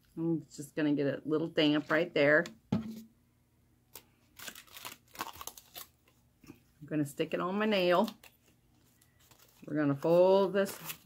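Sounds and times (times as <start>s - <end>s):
aluminium foil crinkling: 4.0s - 6.2s, 7.6s - 11.0s.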